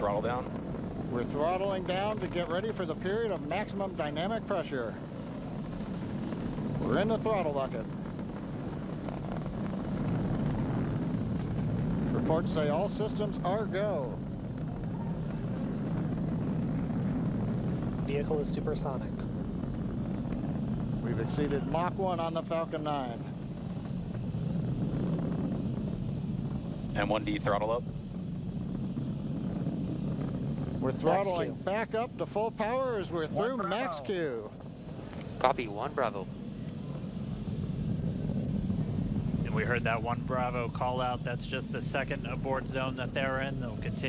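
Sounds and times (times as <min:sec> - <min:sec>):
rocket engines rumbling: 0:00.0 - 0:44.0.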